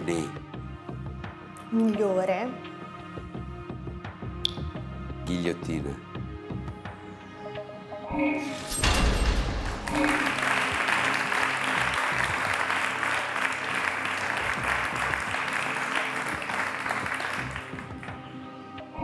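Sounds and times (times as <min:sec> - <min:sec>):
game-show background music: 0:00.0 - 0:19.0
loud musical hit: 0:08.6 - 0:10.8
audience applause: 0:09.6 - 0:18.2.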